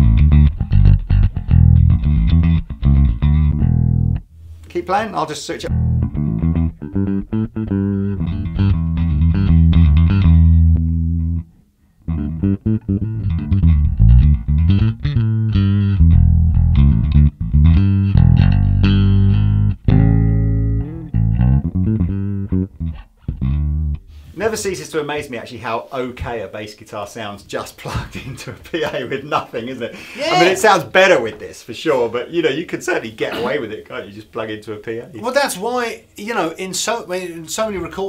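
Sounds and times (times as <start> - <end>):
electric bass guitar riff: 0.0 - 4.7, 5.7 - 24.4.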